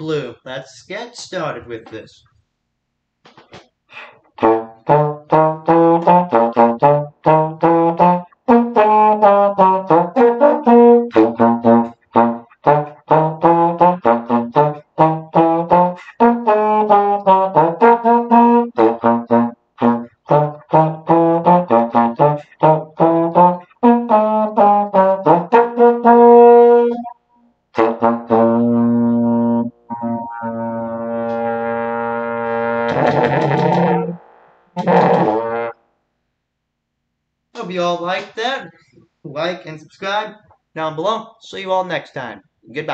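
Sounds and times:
solo trombone playing: 4.4 - 27.2, 27.8 - 35.8.

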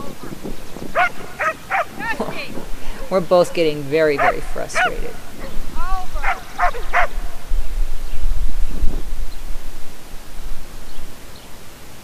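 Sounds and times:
dog barking: 1.0 - 2.0, 4.2 - 5.6, 6.2 - 7.4.

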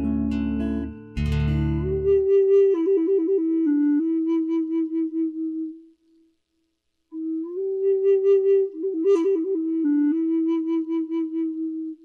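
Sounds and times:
wooden flute long low note: 0.0 - 6.3, 7.1 - 12.0.

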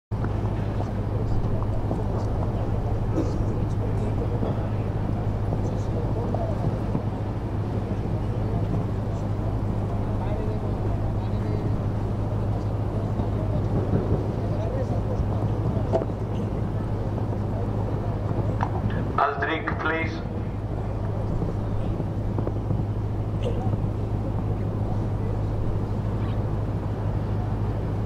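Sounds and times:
faint indistinct voices: 0.1 - 28.0
steady low hum: 0.1 - 28.0.

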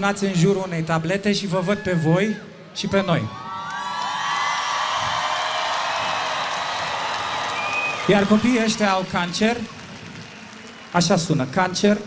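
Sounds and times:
stadium crowd cheering: 3.0 - 12.0
high-pitched whoops: 3.1 - 9.0.

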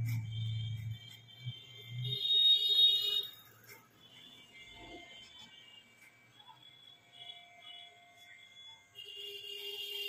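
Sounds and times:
high-pitched whine: 0.0 - 9.0.

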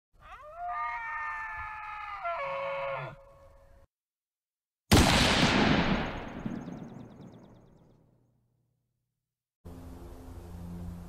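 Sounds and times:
long animal call: 0.2 - 3.8.

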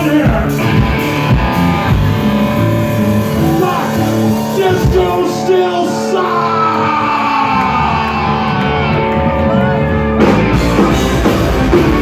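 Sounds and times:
bass guitar: 0.0 - 12.0
electric guitar sustained notes: 0.0 - 12.0
punk rock band playing: 0.0 - 12.0.

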